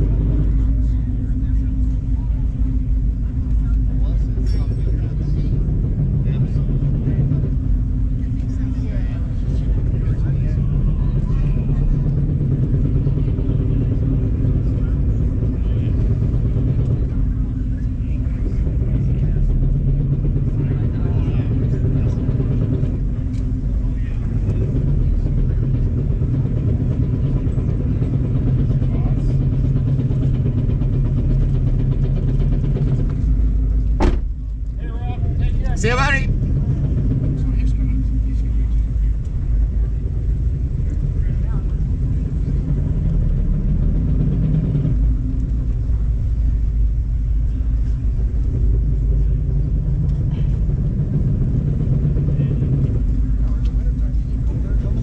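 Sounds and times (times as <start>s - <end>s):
car engine droning in cabin: 0.0s - 55.0s.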